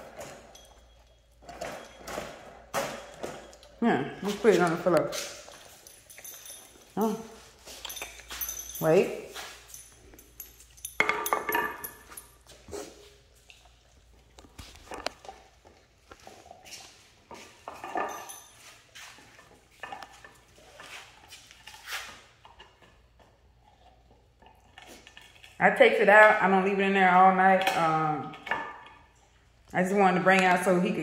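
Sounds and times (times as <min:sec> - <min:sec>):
dog gnawing a bone: 0:19.4 - 0:25.6.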